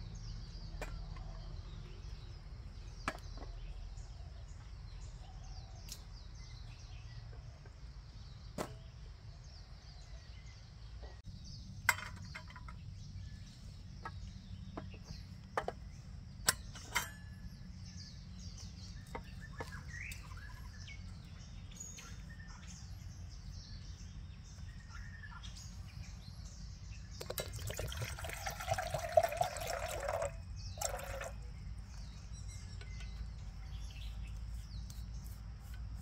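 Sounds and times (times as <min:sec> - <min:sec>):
birds chirping: 0:00.0 - 0:36.0
metal camping gear clinking: 0:11.8 - 0:12.9, 0:16.4 - 0:17.9.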